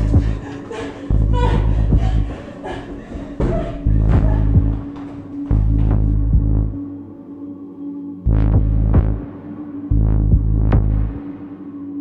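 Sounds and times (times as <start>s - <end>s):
deep bass pulses: 0.0s - 0.4s, 1.1s - 2.3s, 3.8s - 4.9s, 5.5s - 6.9s, 8.3s - 11.4s
humming drone: 0.0s - 12.0s.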